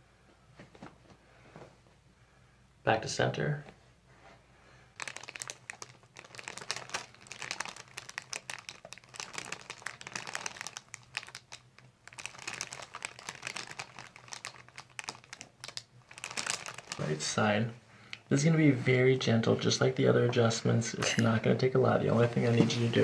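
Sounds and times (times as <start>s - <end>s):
paper crinkling and rustling: 5.0s - 17.2s.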